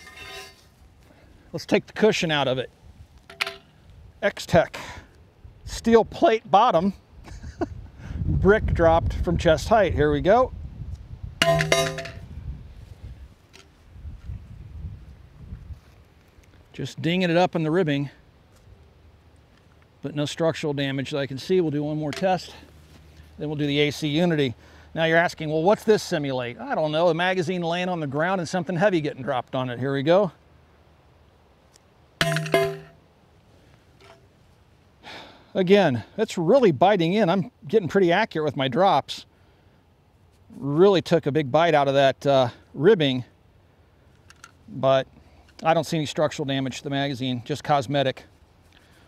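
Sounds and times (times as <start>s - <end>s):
brick striking steel plate clang: 0.0s - 0.6s, 11.4s - 12.2s, 32.2s - 33.0s.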